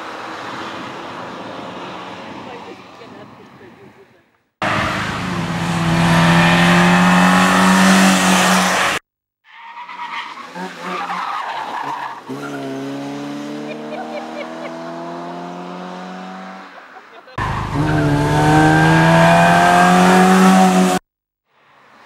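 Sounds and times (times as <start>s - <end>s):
car engine revving hard: 4.6s - 9.0s, 12.3s - 16.6s, 17.4s - 21.0s.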